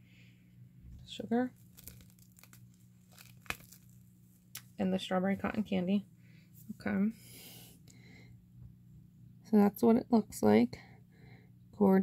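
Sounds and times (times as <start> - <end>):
plastic wrapping crinkling: 1.4 - 4.7.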